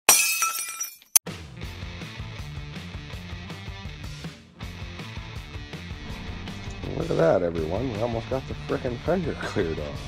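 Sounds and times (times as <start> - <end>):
short sharp hit: 6.0 - 8.7
intro music with steady beat: 6.0 - 9.0.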